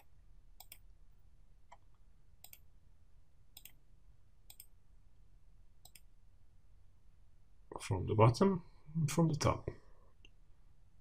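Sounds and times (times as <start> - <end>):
computer mouse clicks: 0.0 - 0.9, 1.7 - 2.7, 3.6 - 3.8, 4.4 - 4.8, 5.8 - 6.1.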